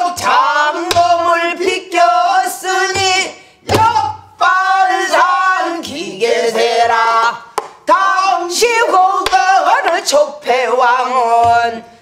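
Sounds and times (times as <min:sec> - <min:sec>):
woman singing with wide vibrato: 0:00.0 - 0:12.0.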